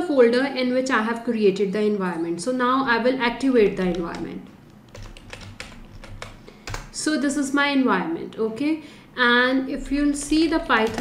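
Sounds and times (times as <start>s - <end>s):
keyboard key clicks: 3.7s - 6.9s.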